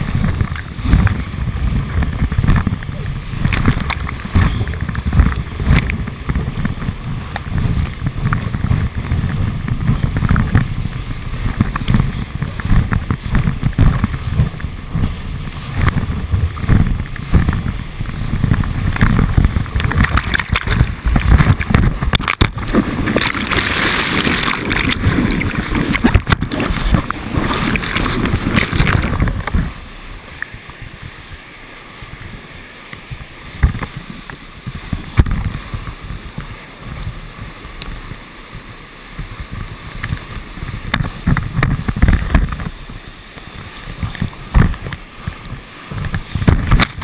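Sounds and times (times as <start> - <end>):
sharp water splashes: 0.0 - 47.0
whitewater rushing: 0.0 - 47.0
wind buffeting microphone: 0.0 - 47.0.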